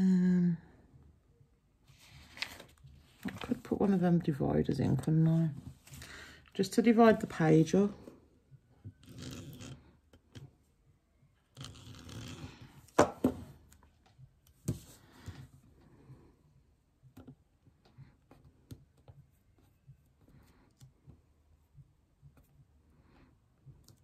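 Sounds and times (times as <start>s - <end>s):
paper rustling and scraping: 1.9s - 4.1s.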